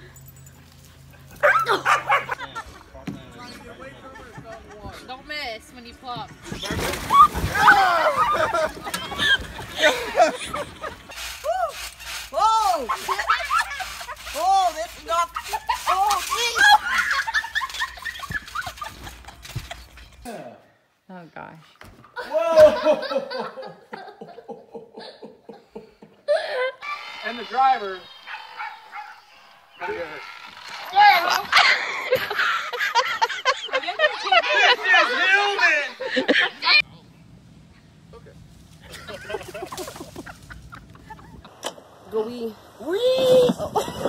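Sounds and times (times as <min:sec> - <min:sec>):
high-pitched laughter: 0:06.3 - 0:20.3, 0:22.2 - 0:27.3, 0:38.9 - 0:41.5.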